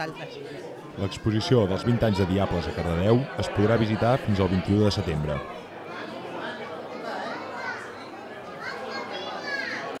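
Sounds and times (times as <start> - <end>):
crowd chatter: 0.0 - 10.0
children's voices: 5.2 - 10.0.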